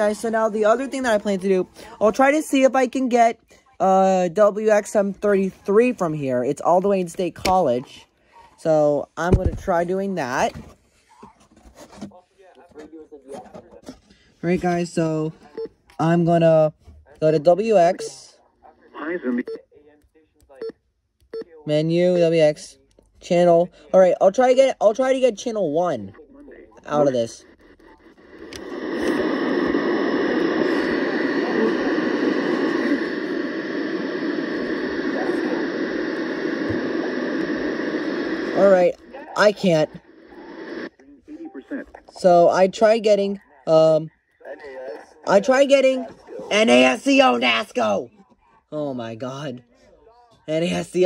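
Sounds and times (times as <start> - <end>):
radio static hiss: 0.0 - 10.6, 16.0 - 19.6, 24.0 - 48.1
quiet speech: 40.4 - 42.2.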